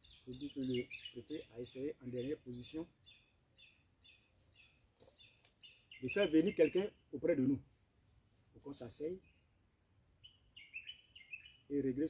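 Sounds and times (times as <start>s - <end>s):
faint bird chirps: 0.0s - 7.9s, 10.2s - 12.0s.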